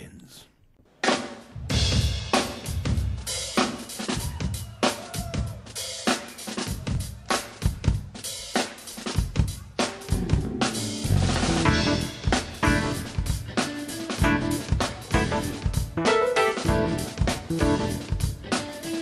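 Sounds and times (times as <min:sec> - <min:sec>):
drum kit playing busy pattern: 0:01.0 - 0:19.0.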